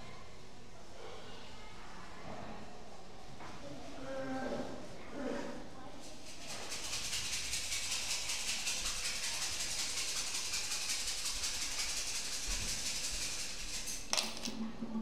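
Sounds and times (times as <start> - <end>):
rapid high-pitched rattling: 6.0 - 14.4.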